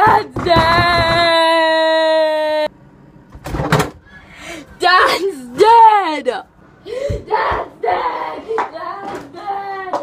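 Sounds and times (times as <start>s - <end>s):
boy making sing-song vocal sounds: 7.2s - 10.0s.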